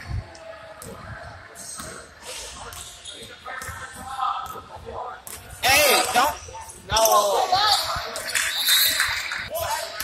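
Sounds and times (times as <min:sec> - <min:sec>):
players' voices: 0:00.0 - 0:10.0.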